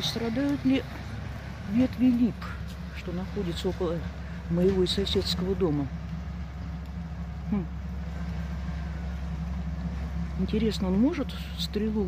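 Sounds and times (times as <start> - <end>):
diesel engine droning: 0.0 - 12.0.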